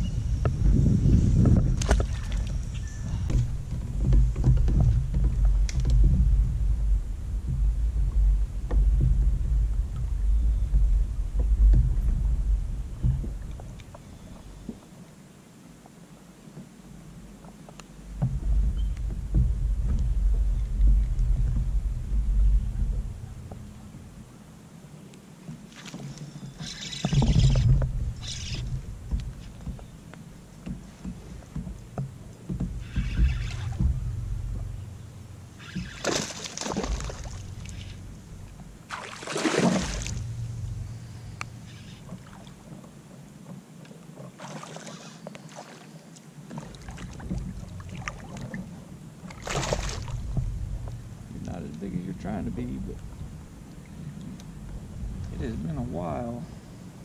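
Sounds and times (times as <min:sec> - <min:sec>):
low rumble: 0:00.0 - 0:14.9, 0:18.0 - 0:24.8, 0:27.1 - 0:42.9, 0:46.7 - 0:57.0
water splashing around a kayak: 0:00.0 - 0:57.0
fish thrashing at water surface: 0:35.6 - 0:38.2, 0:38.9 - 0:40.6, 0:49.3 - 0:50.5.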